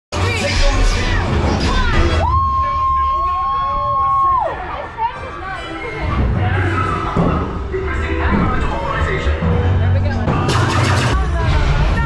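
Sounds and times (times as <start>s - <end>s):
passengers cheering and screaming: 0.2s - 7.7s.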